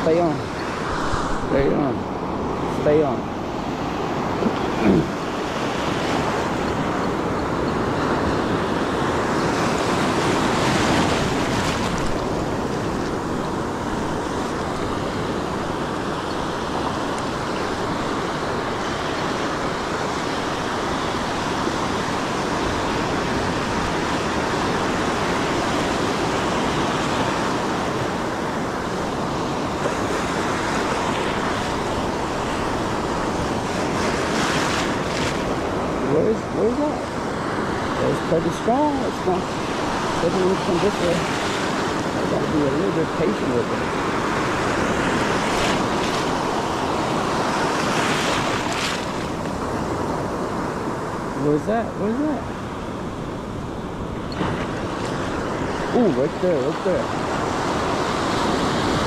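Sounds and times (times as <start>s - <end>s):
ocean surf breaking: 0.0s - 59.0s.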